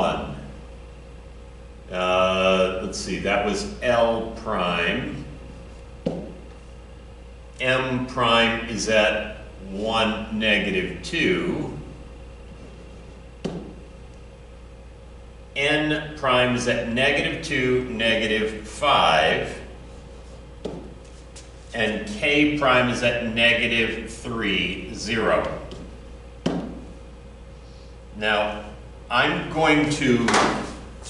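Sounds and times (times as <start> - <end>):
low room hum: 0.0 - 31.0
sharp tap: 6.0 - 6.4, 13.4 - 13.9, 20.6 - 21.0, 25.7 - 26.9
stylus pen tapping whiteboard: 13.4 - 13.8.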